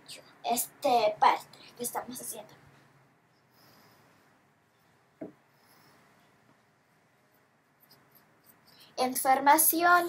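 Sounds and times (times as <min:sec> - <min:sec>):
paintbrush scratching and tapping: 0:07.3 - 0:09.0.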